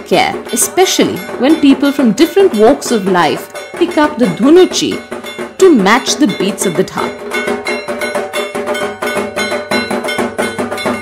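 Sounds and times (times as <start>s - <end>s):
drums beaten in fast rhythm: 0.0s - 11.0s
ringing metallic tone: 0.0s - 11.0s.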